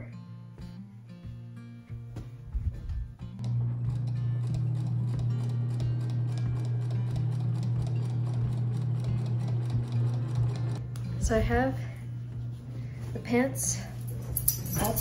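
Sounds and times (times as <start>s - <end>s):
background music: 0.0s - 11.8s
sewing machine stitching: 3.4s - 10.8s.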